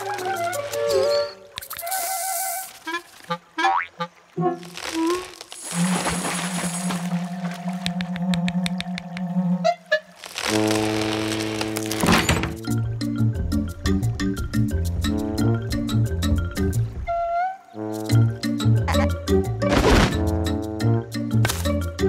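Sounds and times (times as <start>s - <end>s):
cartoon background music: 11.8s - 22.0s.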